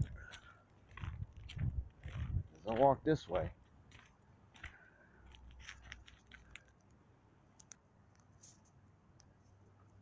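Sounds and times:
faint low rumble: 0.0s - 2.6s
faint small clicks: 5.4s - 9.4s.

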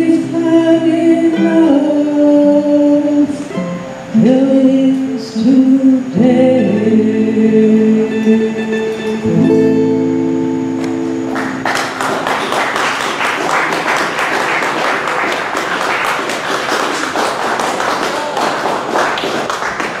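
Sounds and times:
guitar and mandolin chord ringing: 6.1s - 12.1s
audience applause: 11.3s - 20.0s.

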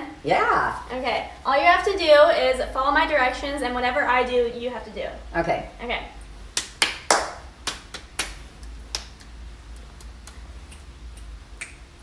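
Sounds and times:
finger snapping: 7.9s - 11.8s.

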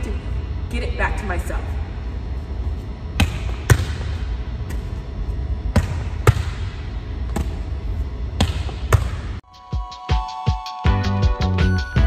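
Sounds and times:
volleyball smacking a wall: 5.7s - 7.6s.

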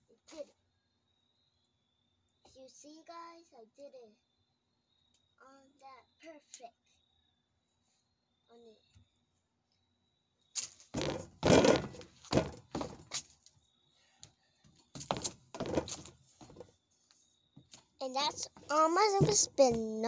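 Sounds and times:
feet stomping on wooden boards: 10.9s - 13.3s, 14.9s - 16.7s, 18.3s - 20.0s.

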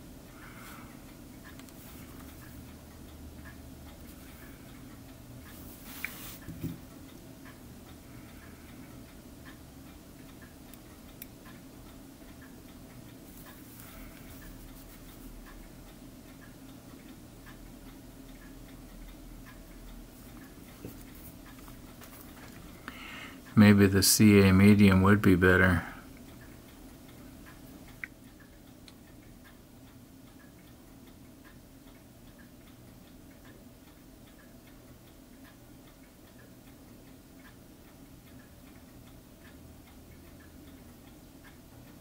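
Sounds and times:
faint ticking: 0.0s - 42.0s.

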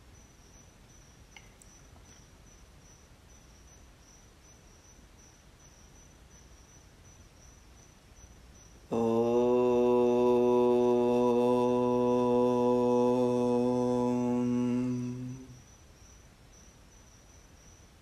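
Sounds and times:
faint crickets chirping: 0.0s - 18.0s
man chanting long steady note: 8.9s - 15.6s.

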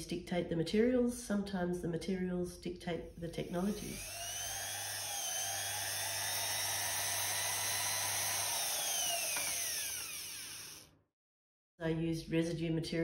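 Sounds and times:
rotary tool whining: 3.4s - 10.9s.

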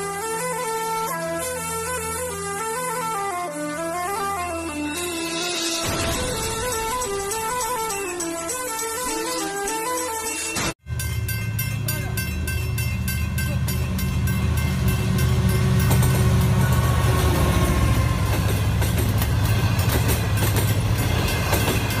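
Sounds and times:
train rumbling past: 4.2s - 8.6s, 10.8s - 22.0s
wheels clacking over rail joints: 11.4s - 22.0s.

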